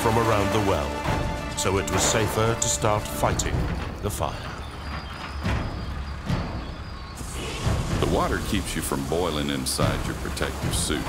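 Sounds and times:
low machinery rumble: 0:00.6 - 0:11.0
rushing hiss: 0:05.9 - 0:11.0.

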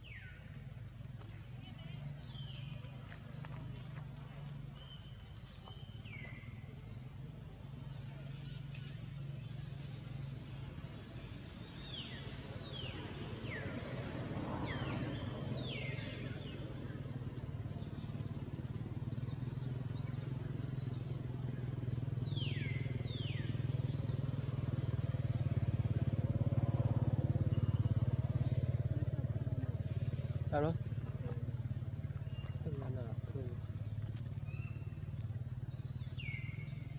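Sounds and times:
motor engine running: 0:00.0 - 0:36.9.

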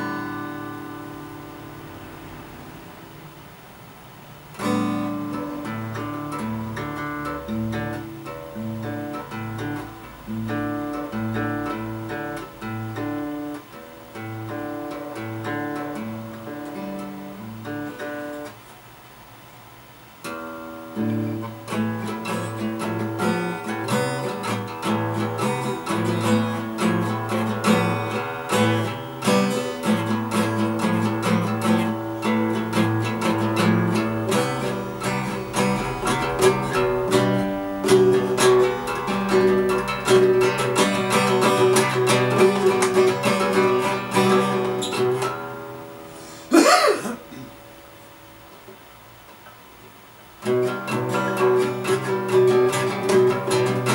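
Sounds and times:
acoustic guitar strummed and plucked: 0:00.0 - 0:53.9
loud sliding sound: 0:33.7 - 0:43.1.

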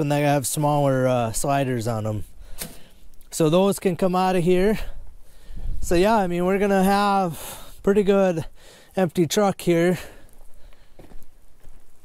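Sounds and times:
soft footsteps: 0:10.2 - 0:12.0.

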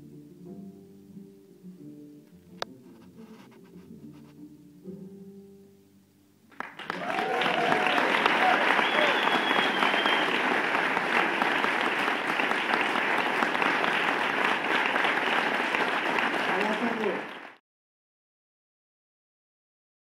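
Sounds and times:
audience applauding: 0:06.5 - 0:17.6.

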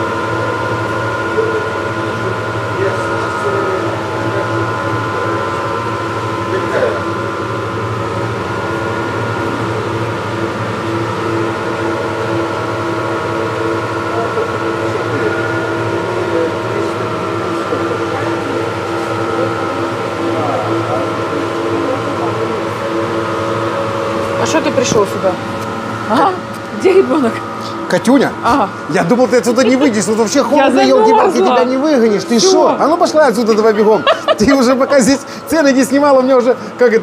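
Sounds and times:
refrigerated display cases humming: 0:00.0 - 0:37.0.

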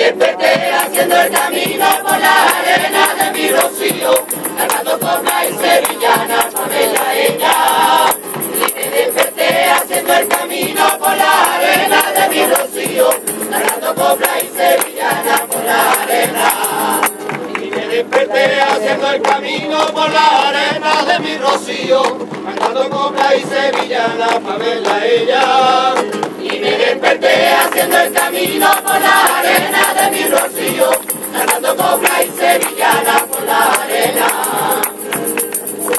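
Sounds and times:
mixed choir singing: 0:00.0 - 0:35.9
steady rhythmic beat: 0:00.0 - 0:35.9
jingling percussion: 0:00.2 - 0:21.6, 0:27.0 - 0:35.9
tambourine: 0:00.5 - 0:17.3, 0:27.3 - 0:35.9.

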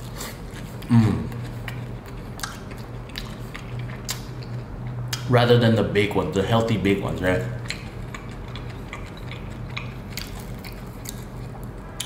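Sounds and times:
man chewing pastry: 0:00.0 - 0:05.3, 0:07.1 - 0:12.0
steady low hum: 0:00.0 - 0:12.0.

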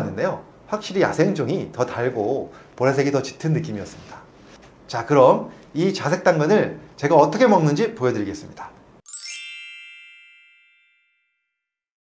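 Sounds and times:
bell-like chime ringing: 0:09.1 - 0:11.8.

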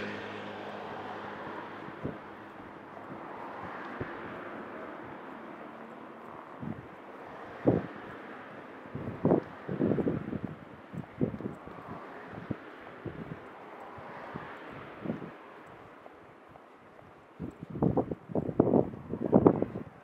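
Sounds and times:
car passing: 0:00.0 - 0:20.0
car traffic noise: 0:00.0 - 0:20.0
wind buffeting microphone: 0:00.0 - 0:20.0.

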